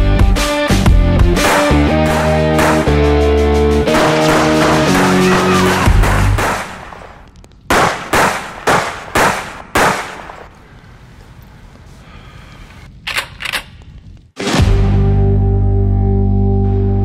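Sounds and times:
rock music with guitar: 0:00.0 - 0:06.4
pistol shots: 0:01.4 - 0:03.2, 0:03.9 - 0:10.5.

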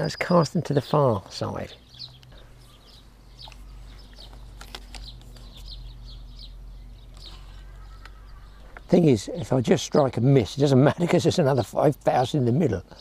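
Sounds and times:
low steady hum: 0:00.0 - 0:13.0
small birds chirping: 0:00.0 - 0:13.0.

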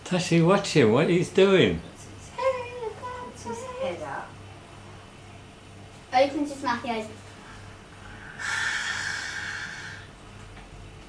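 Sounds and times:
person hissing like an animal: 0:08.0 - 0:10.1.

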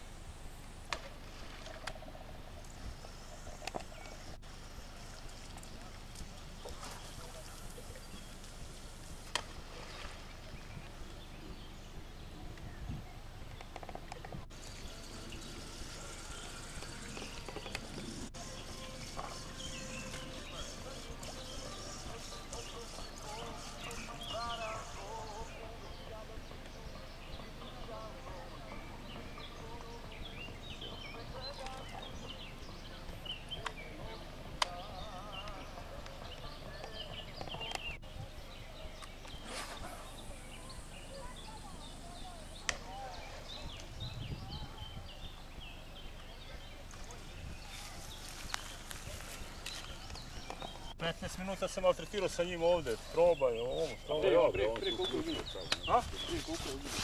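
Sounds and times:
small birds chirping: 0:02.6 - 0:57.0.

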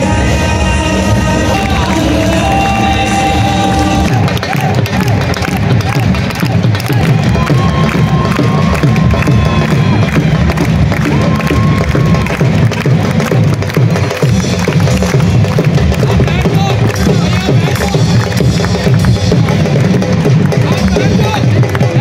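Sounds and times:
crowd cheering: 0:00.0 - 0:22.0
loud music with drum beat: 0:00.0 - 0:22.0.

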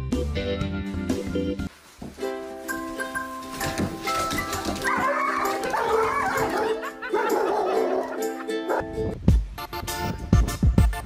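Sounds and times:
ukulele music: 0:00.0 - 0:11.0
dog yelping and barking: 0:04.7 - 0:08.9.

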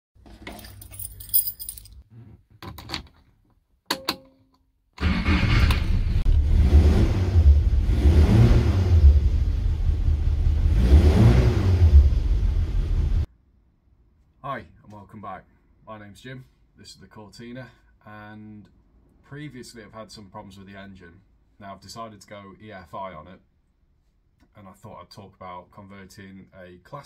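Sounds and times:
keys jingling: 0:00.4 - 0:02.0
car engine revving: 0:05.0 - 0:13.3.

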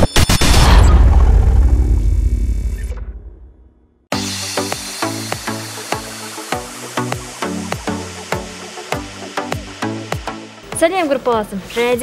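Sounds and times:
deep boom: 0:00.2 - 0:04.0
intro sting hits: 0:00.2 - 0:10.7.

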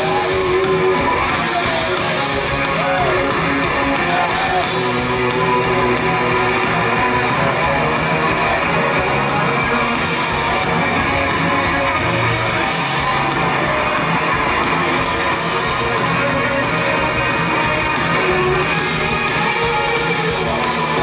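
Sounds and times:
live band playing instrumental: 0:00.0 - 0:21.0.

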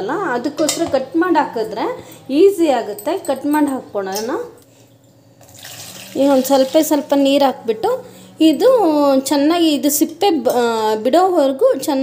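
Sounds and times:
water pouring into metal pot: 0:05.4 - 0:06.9.

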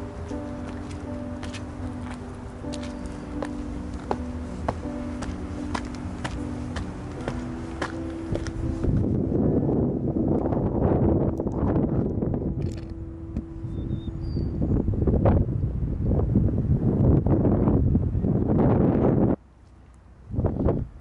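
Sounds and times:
wind buffeting microphone: 0:00.0 - 0:19.4, 0:20.2 - 0:21.0
steady low hum: 0:00.0 - 0:21.0.

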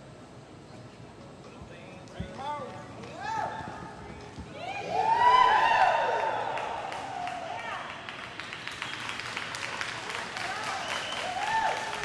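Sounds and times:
audience applauding: 0:05.3 - 0:12.0.

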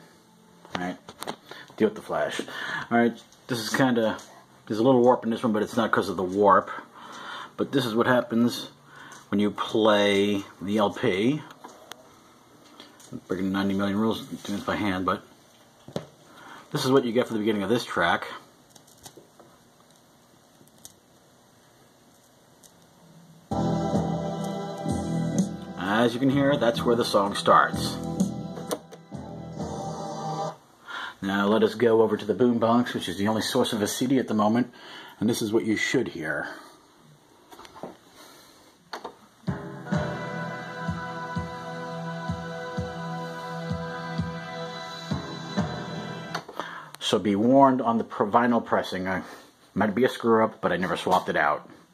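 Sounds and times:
vinyl surface hiss: 0:00.0 - 0:51.9
soft record clicks: 0:00.6 - 0:08.5, 0:09.1 - 0:14.7, 0:18.6 - 0:21.3, 0:22.0 - 0:23.0, 0:24.4 - 0:29.1, 0:50.2 - 0:51.6
low beat: 0:23.5 - 0:30.4, 0:39.4 - 0:46.4.

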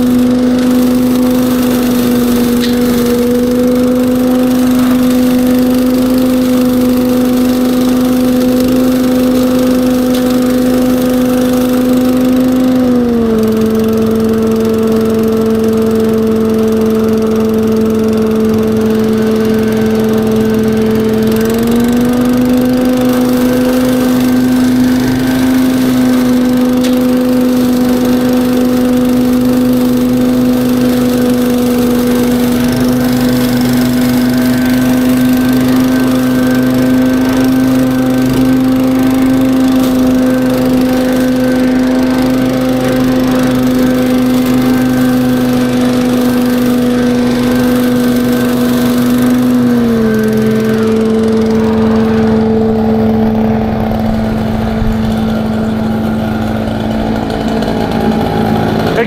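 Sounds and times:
leaf vacuum running: 0:00.0 - 0:59.0.

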